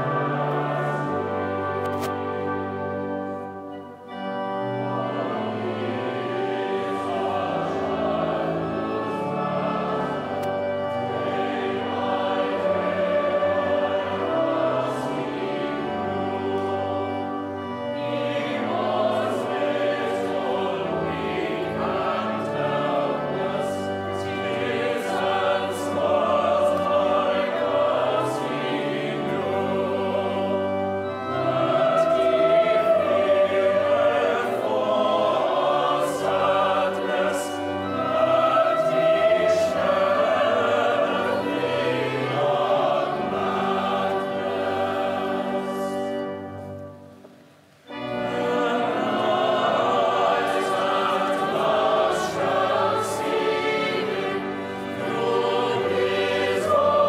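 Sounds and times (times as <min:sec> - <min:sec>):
children's choir singing: 0:00.0 - 0:57.0
pipe organ: 0:00.0 - 0:57.0.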